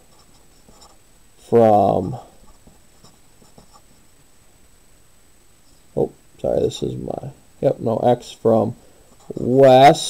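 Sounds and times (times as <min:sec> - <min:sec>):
marker pen scratching on paper: 0:00.0 - 0:01.0, 0:02.4 - 0:04.1, 0:09.1 - 0:09.6.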